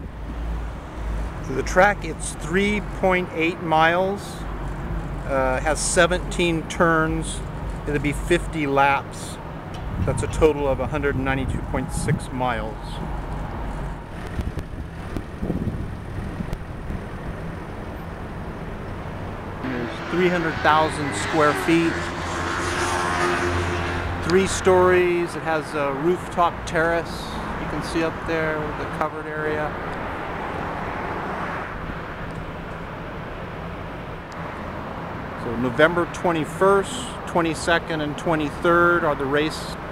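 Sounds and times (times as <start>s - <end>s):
low city roar: 0.0s - 39.9s
outdoor traffic noise: 0.0s - 39.9s
wind on microphone: 9.8s - 17.1s.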